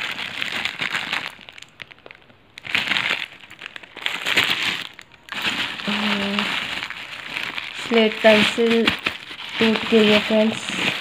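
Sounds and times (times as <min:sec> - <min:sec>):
plastic bags crinkling and rustling: 0:00.0 - 0:11.0.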